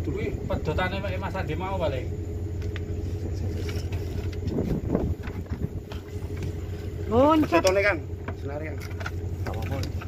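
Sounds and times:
low motor hum: 0.0 - 10.0.

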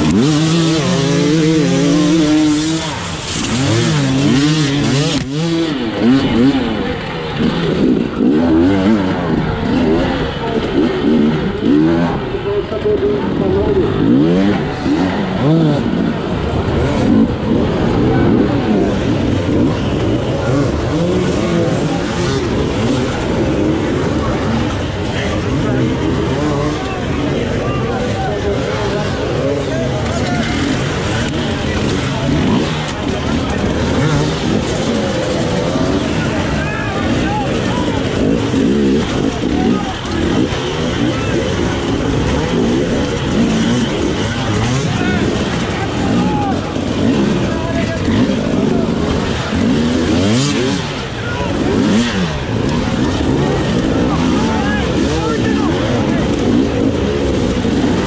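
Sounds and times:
two-stroke motorcycle engine revving: 0.0 - 58.0.

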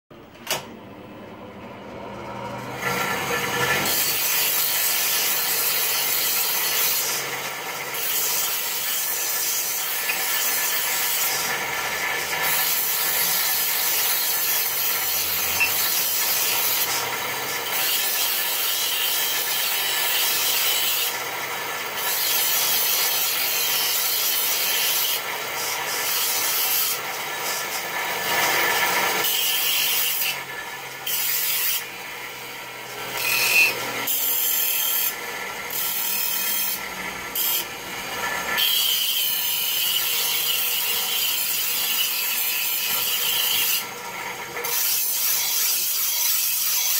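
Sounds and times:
bench grinder motor whine: 0.6 - 44.8
knife grinding on stone wheel: 2.6 - 46.9.

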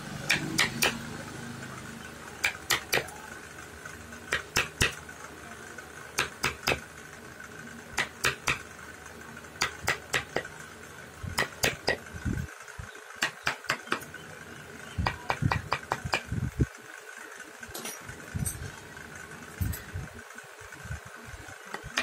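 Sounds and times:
mallet striking chisel: 0.3 - 1.0, 2.4 - 3.1, 4.3 - 5.0, 6.2 - 6.8, 8.0 - 8.6, 9.6 - 10.4, 11.4 - 12.0, 13.2 - 14.1.

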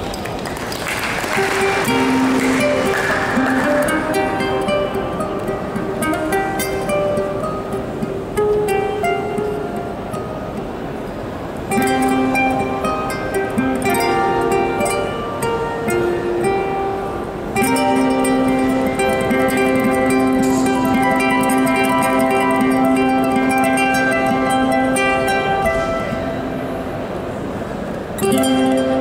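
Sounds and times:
amplified ukulele fingerstyle: 0.0 - 29.0.

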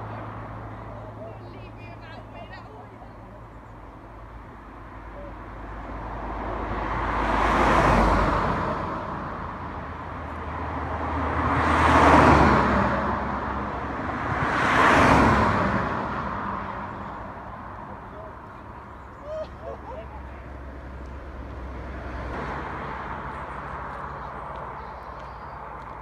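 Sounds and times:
cars passing: 0.0 - 26.0.

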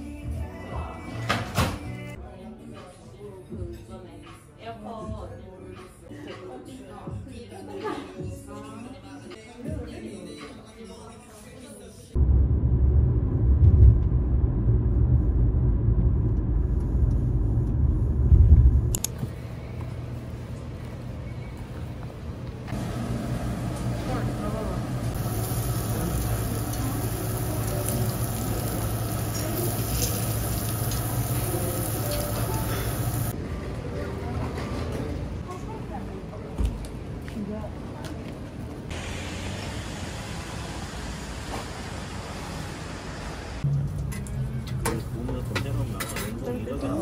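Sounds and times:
low road rumble inside car: 12.2 - 19.0
steady hiss: 25.2 - 33.3.

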